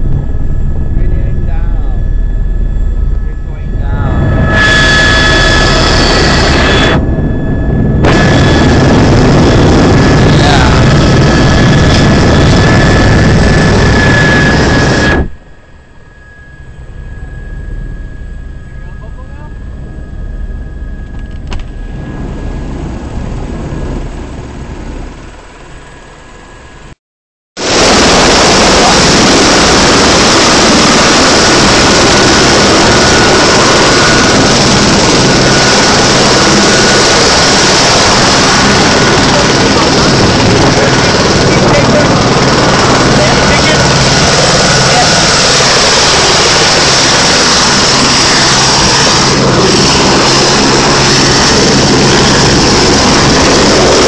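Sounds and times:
wind noise from rotor downwash: 0.0 - 15.5, 16.3 - 26.8, 27.6 - 54.0
helicopter turbine and rotor noise: 0.0 - 27.0, 27.6 - 54.0.

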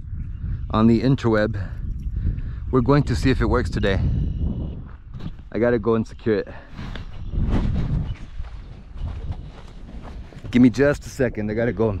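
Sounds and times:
wind rumbling on microphone: 0.0 - 12.0
footsteps in dry grass: 6.8 - 10.9.

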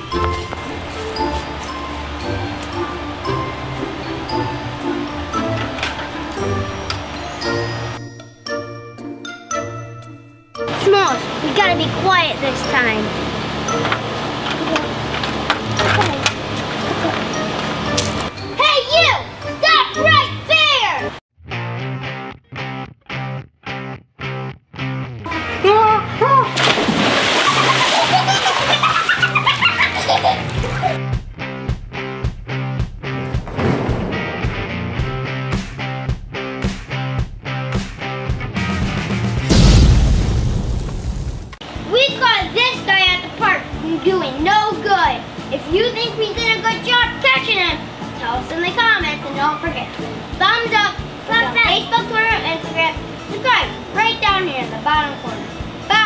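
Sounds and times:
person splashing into pool: 26.5 - 29.4
background music with a beat: 31.0 - 39.6.

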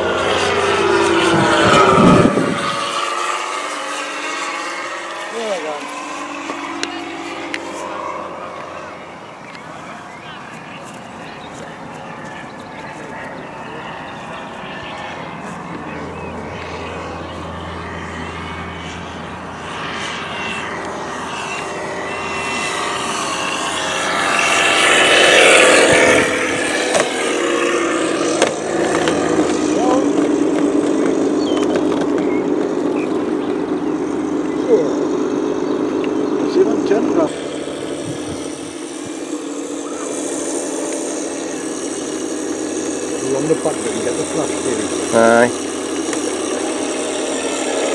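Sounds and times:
model plane motor and propeller: 0.0 - 47.9.

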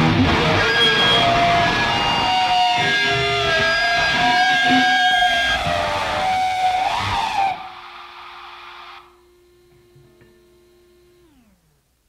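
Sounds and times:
rock rhythm section: 0.0 - 7.6
distorted electric guitars: 0.0 - 11.7
faint steady hum: 7.6 - 12.0.

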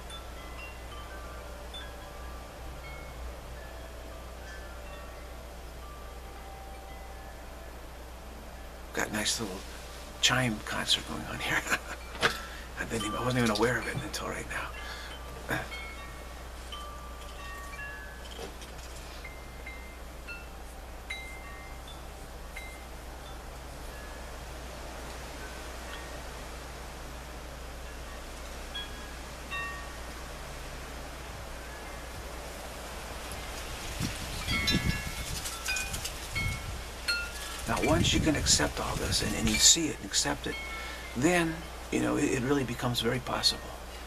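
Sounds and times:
wind chimes ringing: 0.0 - 44.0.

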